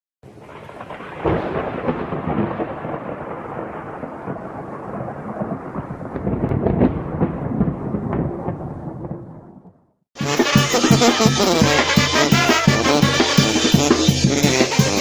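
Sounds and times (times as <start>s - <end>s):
rain: 0.2s - 9.3s
sharp thunder crack: 0.2s - 9.8s
rolling thunder: 0.2s - 9.9s.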